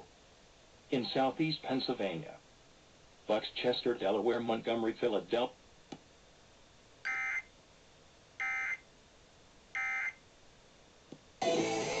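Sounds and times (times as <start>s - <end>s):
radio music: 1.0s - 2.4s.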